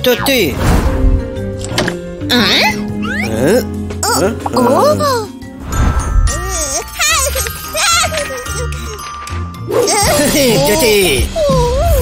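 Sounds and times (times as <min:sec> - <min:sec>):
jingly cartoon background tune: 0:00.0 - 0:12.0
squeaky cartoon vocal sounds: 0:02.5 - 0:05.0.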